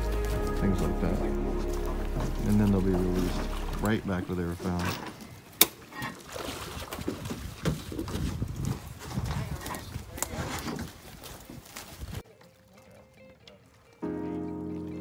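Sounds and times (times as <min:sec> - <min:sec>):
people talking indistinctly: 0:00.0 - 0:05.0.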